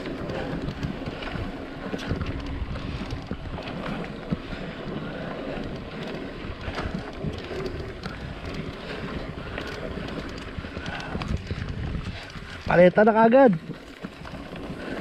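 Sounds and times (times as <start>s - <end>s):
wind on microphone: 0.0s - 13.0s
bike clicking and rattling: 0.0s - 15.0s
tyres rolling on dirt: 0.0s - 15.0s.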